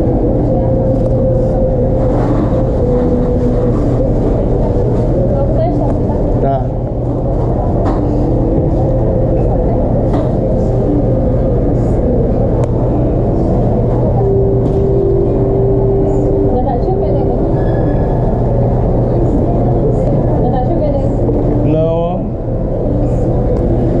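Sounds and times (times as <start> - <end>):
muffled indistinct voices: 0.0 - 24.0
steady low hum: 0.0 - 24.0.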